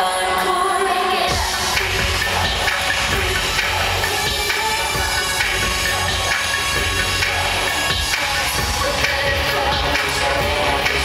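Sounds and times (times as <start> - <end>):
loud pop concert music: 0.0 - 11.0.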